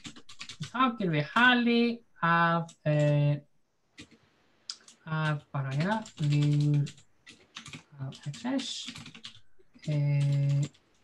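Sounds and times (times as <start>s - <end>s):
keyboard typing: 0.0s - 0.8s, 2.7s - 3.3s, 4.0s - 11.0s
man speaking: 0.6s - 3.4s, 5.0s - 6.9s, 7.9s - 9.0s, 9.9s - 10.7s.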